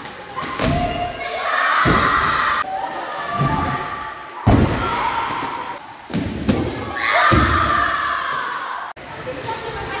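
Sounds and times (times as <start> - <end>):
children chattering: 9.0 - 10.0.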